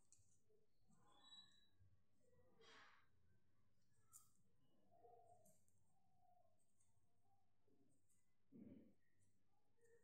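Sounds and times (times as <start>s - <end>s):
soft breath: 2.5s - 3.2s.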